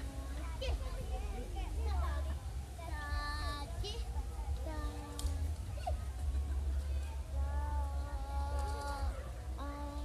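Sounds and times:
children's and adults' voices: 0:00.0 - 0:10.0
child singing long held note: 0:07.4 - 0:10.0.

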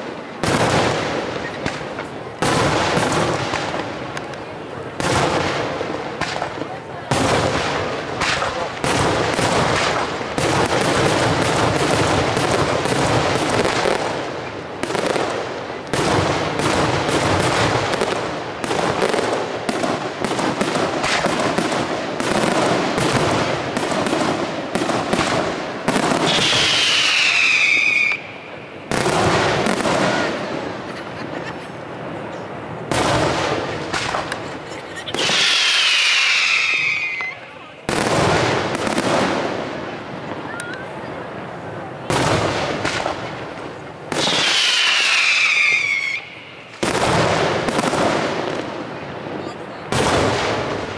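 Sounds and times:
fireworks bursting: 0:00.0 - 0:50.9
falling firework whistles: 0:25.9 - 0:29.1, 0:35.0 - 0:37.5, 0:44.1 - 0:46.9.

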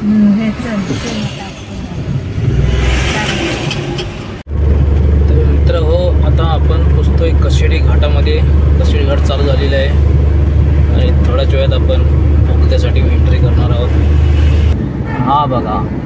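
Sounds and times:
car road and engine drone: 0:00.0 - 0:16.0
traffic noise: 0:00.0 - 0:16.0
trucks idling: 0:02.3 - 0:14.8.

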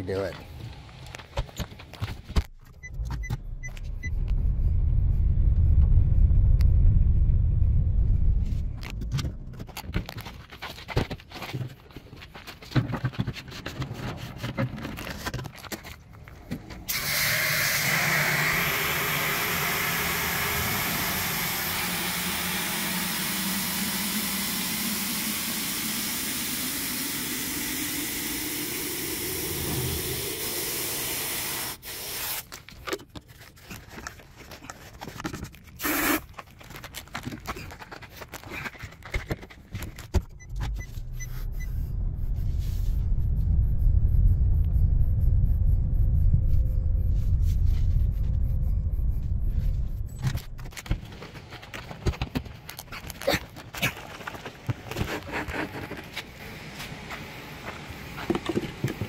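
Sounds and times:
car engine rumble: 0:00.2 - 0:11.3, 0:12.9 - 0:31.6, 0:36.5 - 0:54.9
knocks and handling sounds: 0:08.9 - 0:16.8, 0:32.5 - 0:40.7
water from hose filling plastic jug: 0:16.9 - 0:32.4.

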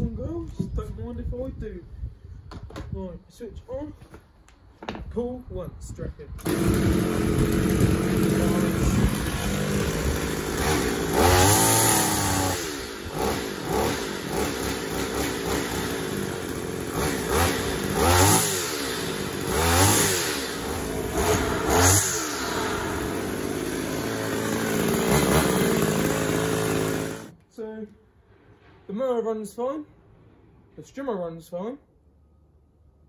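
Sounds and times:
strimmer engine revving: 0:06.4 - 0:27.4.

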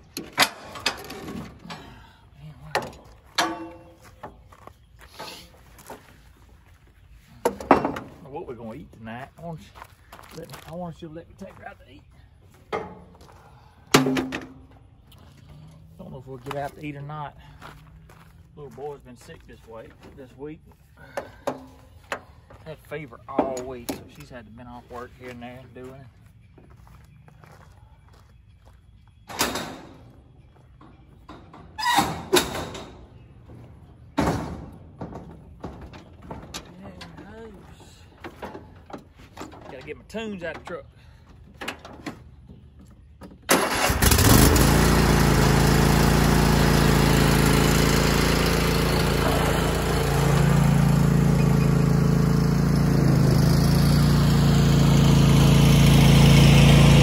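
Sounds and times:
metal clank: 0:02.8 - 0:04.0, 0:13.9 - 0:14.7.

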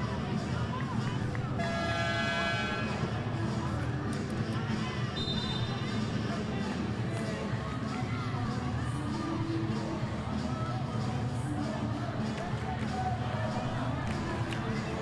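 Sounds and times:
arena crowd noise: 0:00.0 - 0:15.0
background music: 0:00.0 - 0:15.0
short high whistle blast: 0:05.2 - 0:05.8.

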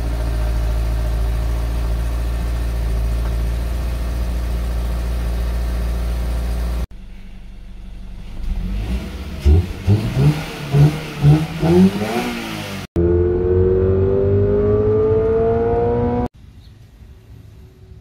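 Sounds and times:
car engine idling: 0:00.0 - 0:09.9
engine revving: 0:08.2 - 0:16.3.

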